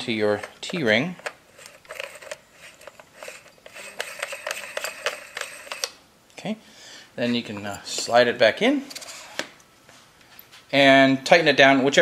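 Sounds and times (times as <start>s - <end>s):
metal threads clicking and scraping: 0.0s - 6.0s.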